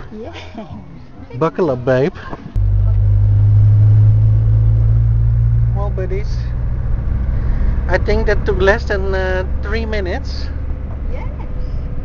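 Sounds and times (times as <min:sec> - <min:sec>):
motorhome engine droning: 0:02.6 - 0:12.0.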